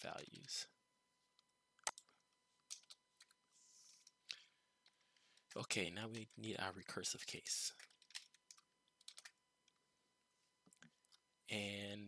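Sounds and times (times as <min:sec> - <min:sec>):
faint computer keyboard typing: 0:01.8 - 0:06.6, 0:07.4 - 0:09.8.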